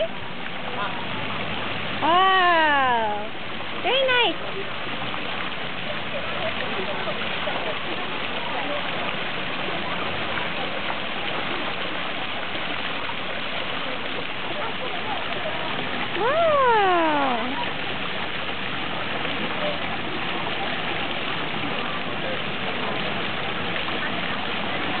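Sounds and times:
fountain water rushing: 0.0s - 25.0s
person calling out: 16.2s - 17.6s.

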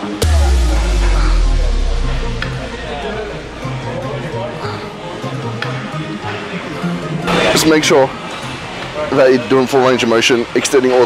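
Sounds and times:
background music with bass line: 0.0s - 5.0s.

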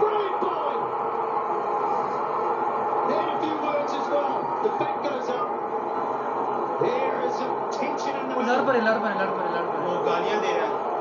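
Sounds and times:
crowd noise through tv speakers: 0.0s - 11.0s.

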